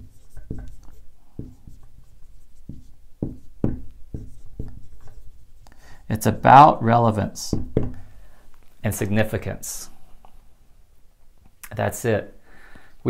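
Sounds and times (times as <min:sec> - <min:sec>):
marker writing on whiteboard: 0:00.0 - 0:06.5, 0:07.3 - 0:08.2.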